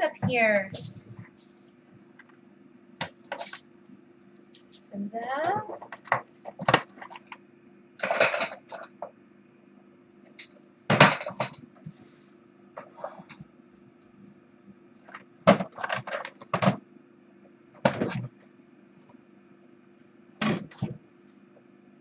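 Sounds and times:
steady low hum: 0:00.0 - 0:22.0
plastic toys clattering: 0:08.0 - 0:09.0, 0:15.0 - 0:16.8.

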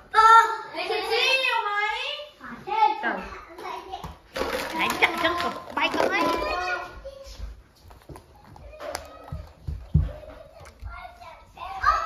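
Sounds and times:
children shouting excitedly: 0:08.4 - 0:12.0.

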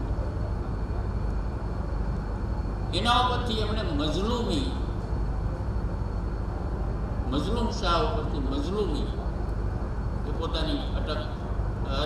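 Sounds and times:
hall background rumble and hiss: 0:00.0 - 0:12.0
man speaking: 0:02.9 - 0:04.8, 0:10.3 - 0:12.0.

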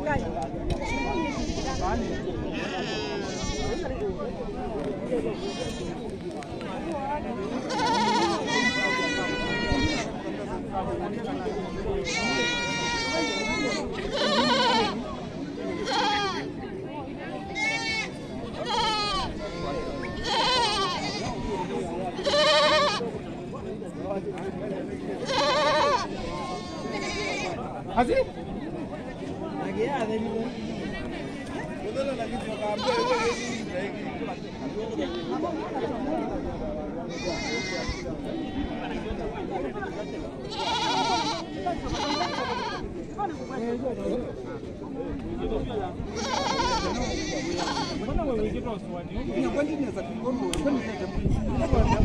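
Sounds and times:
crowd chatter: 0:00.0 - 0:52.0
young goats bleating: 0:00.8 - 0:03.8, 0:05.3 - 0:06.0, 0:07.6 - 0:10.1, 0:11.7 - 0:16.5, 0:17.5 - 0:21.5, 0:22.2 - 0:23.1, 0:25.2 - 0:27.6, 0:32.8 - 0:33.7, 0:37.1 - 0:38.7, 0:40.0 - 0:43.6, 0:46.1 - 0:48.1.

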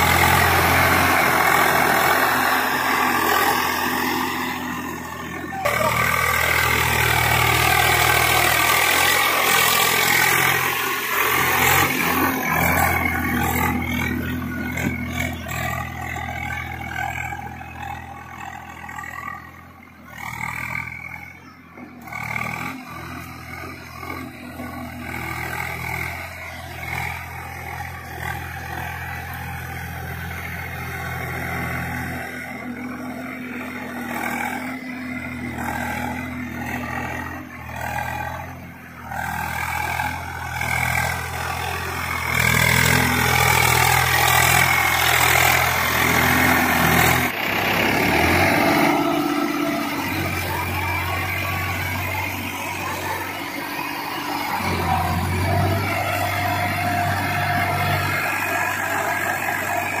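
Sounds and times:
tractor diesel engine under load: 0:00.0 - 1:00.0.

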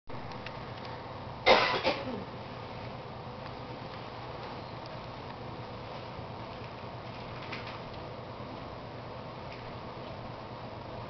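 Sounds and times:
low room hiss: 0:00.1 - 0:11.0
person coughing: 0:01.5 - 0:02.3.

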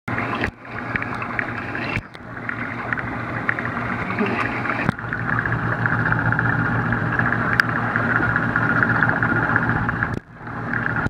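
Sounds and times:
low pump hum: 0:00.1 - 0:11.0
water bubbling and crackling: 0:00.1 - 0:11.0.

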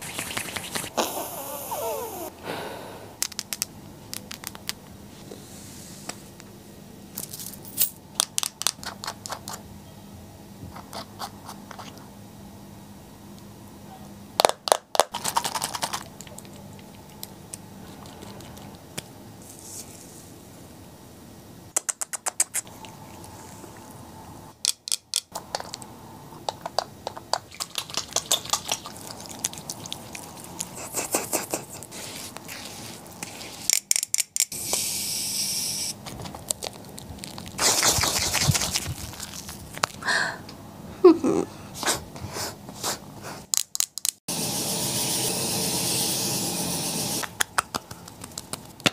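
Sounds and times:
hands rubbing and washing face: 0:00.0 - 0:01.0, 0:27.1 - 0:33.9, 0:36.2 - 0:40.0, 0:47.3 - 0:48.9.

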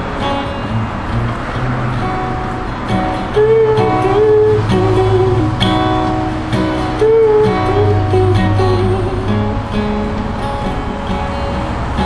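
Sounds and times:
acoustic guitar picking and strumming: 0:00.0 - 0:12.0.

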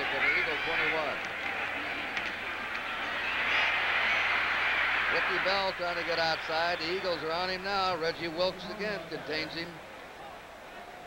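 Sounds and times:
stadium crowd roar: 0:00.0 - 0:11.0.

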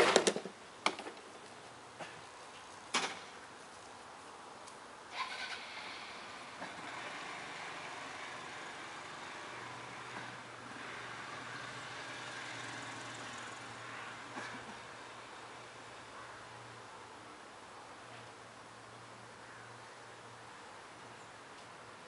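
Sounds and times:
low engine hum: 0:05.1 - 0:16.2.

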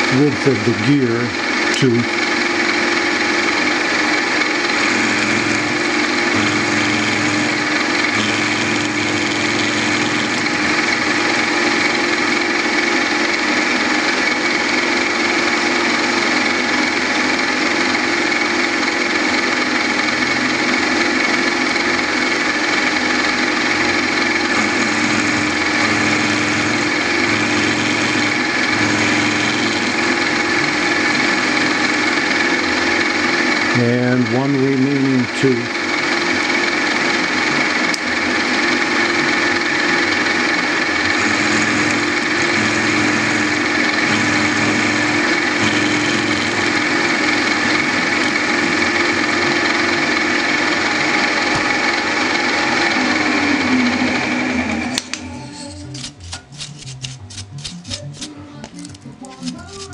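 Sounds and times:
milling machine cutting metal: 0:00.0 - 0:59.9.

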